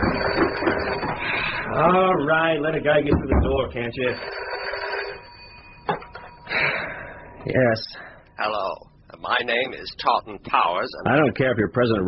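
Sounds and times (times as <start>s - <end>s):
telephone bell ringing: 0.0s - 1.6s, 4.0s - 7.2s.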